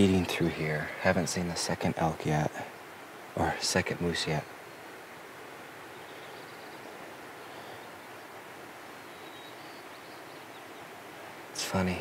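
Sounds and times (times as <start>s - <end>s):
faint distant bird tones: 0.0s - 12.0s
steady outdoor hiss: 0.0s - 12.0s.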